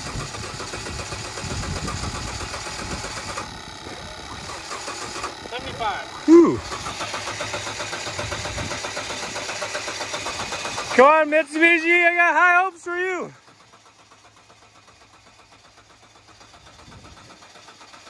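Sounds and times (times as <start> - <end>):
engine cranking on starter: 0.0 - 18.0
person shouting: 6.3 - 6.6, 11.0 - 13.4.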